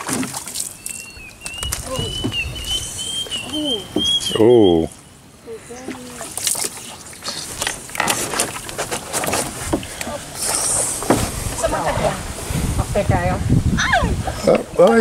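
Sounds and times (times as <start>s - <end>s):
water splashing against canoe: 0.0s - 5.0s, 5.6s - 12.8s.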